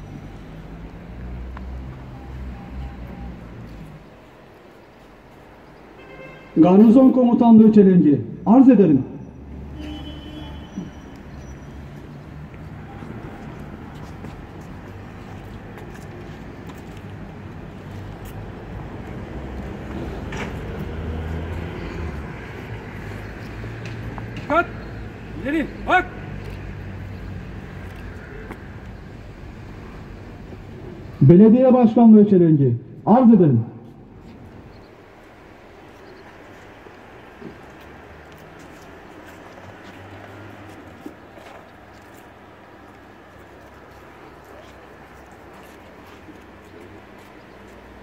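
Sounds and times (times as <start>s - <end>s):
low rumble of road traffic: 0.0s - 48.0s
short sharp shouted calls: 24.4s - 26.4s.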